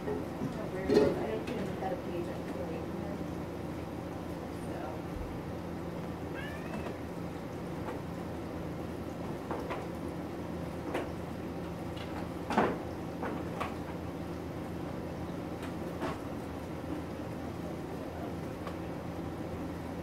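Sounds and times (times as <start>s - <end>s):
cat meowing: 6.3s - 7.1s.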